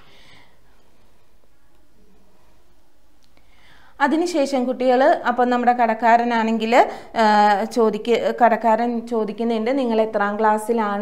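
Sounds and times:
soft in-breath: 0:00.0 - 0:01.3, 0:03.4 - 0:04.0
faint hiss and hum: 0:00.0 - 0:11.0.

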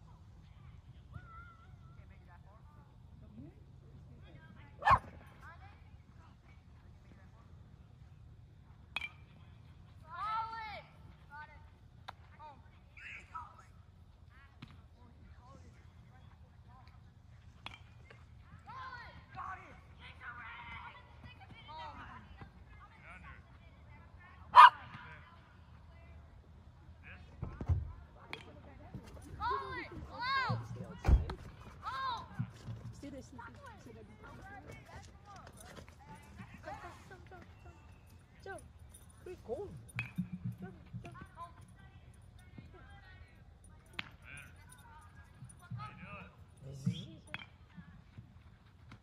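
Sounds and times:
dog barking: 0:04.8 - 0:05.2, 0:24.6 - 0:24.8.

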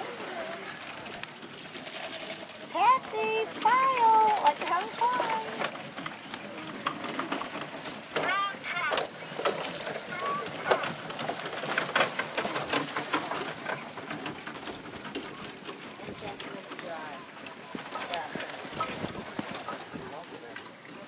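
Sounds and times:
carriage wheels rolling: 0:00.0 - 0:21.0
horse hooves trotting: 0:00.0 - 0:21.0.

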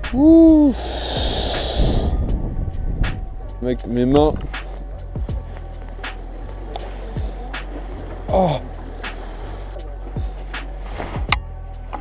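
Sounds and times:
strong wind buffeting microphone: 0:00.0 - 0:05.6.

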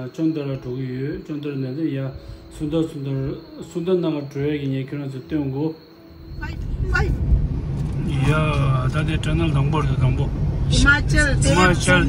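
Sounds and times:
car engine and road noise: 0:06.0 - 0:12.0.

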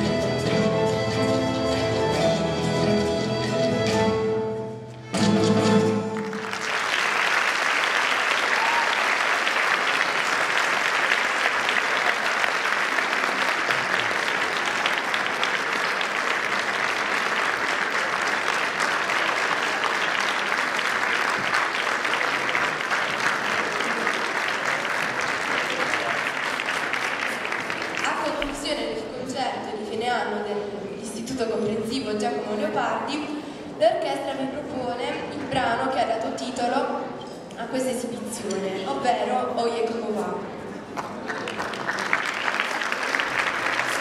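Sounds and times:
audience applauding: 0:05.9 - 0:28.5, 0:40.9 - 0:44.0.

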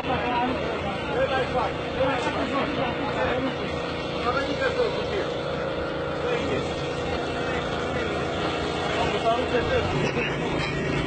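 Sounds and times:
people talking: 0:00.0 - 0:11.0
tractor engine idling: 0:00.0 - 0:11.0.

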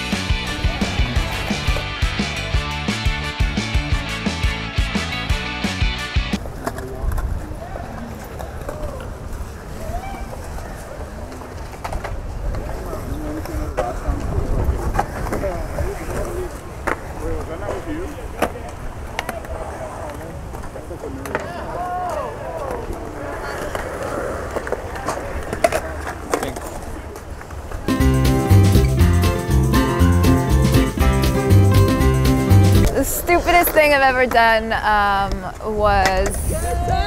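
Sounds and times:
skateboard wheels rolling: 0:00.0 - 0:02.3, 0:06.4 - 0:29.2
bystanders chatting: 0:06.4 - 0:28.7, 0:32.7 - 0:37.0.

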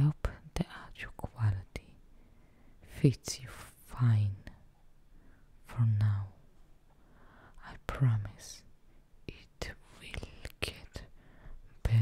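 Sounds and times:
woman whispering: 0:00.0 - 0:02.0, 0:02.8 - 0:04.7, 0:05.6 - 0:06.4, 0:07.6 - 0:12.0.

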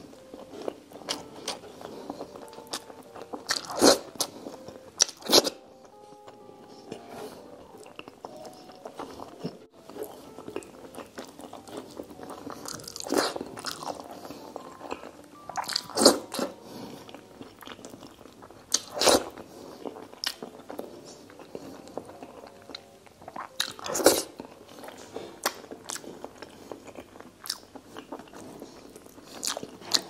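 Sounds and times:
person chewing food: 0:00.0 - 0:30.0.

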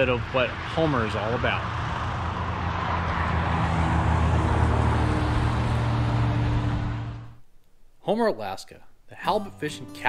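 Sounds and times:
highway traffic drone: 0:00.0 - 0:07.4.

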